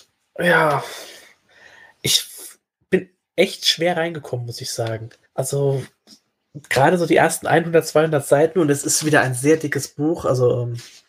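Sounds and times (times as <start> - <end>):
faint breath: 0.8 - 2.0.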